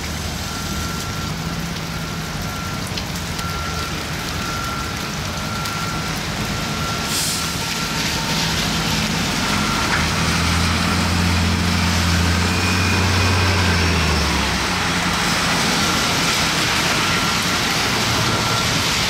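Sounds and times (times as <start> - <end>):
tyres hissing on wet road: 0.0 - 19.0
bus engine pulling away: 6.2 - 19.0
air brake hiss: 7.1 - 7.6.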